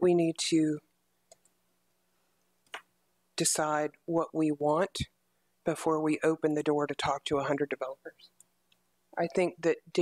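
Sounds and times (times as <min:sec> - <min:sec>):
faint clicks: 0:01.3 - 0:01.6.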